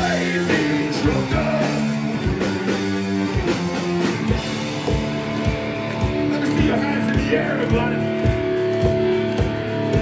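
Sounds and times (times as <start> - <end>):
distorted electric guitars: 0.0 - 10.0
drum kit: 0.0 - 10.0.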